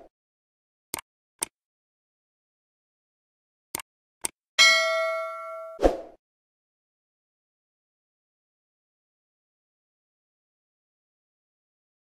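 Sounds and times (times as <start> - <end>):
bright bell ding: 4.6 - 5.8.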